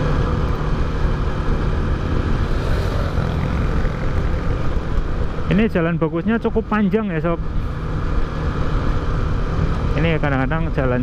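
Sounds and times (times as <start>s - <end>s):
wind rushing over microphone: 0.0s - 5.7s
motorcycle engine running steadily: 0.0s - 11.0s.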